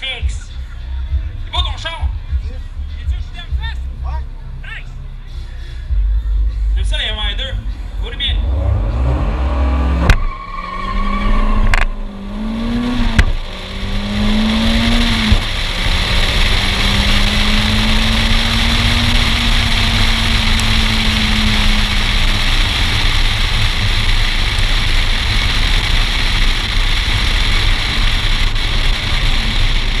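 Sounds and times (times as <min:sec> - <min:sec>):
car engine accelerating: 0:00.0 - 0:30.0
wind and road noise: 0:00.0 - 0:30.0.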